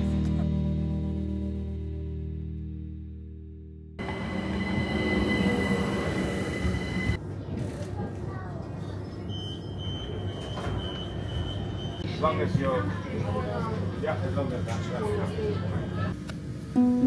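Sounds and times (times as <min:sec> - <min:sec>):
high-pitched whines: 0:04.0 - 0:07.2
train rumbling: 0:04.0 - 0:08.6.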